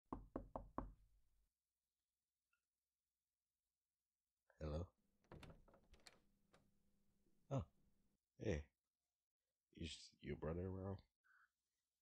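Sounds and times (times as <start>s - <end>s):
quick knocks on a door: 0.1s - 1.0s, 5.3s - 6.2s.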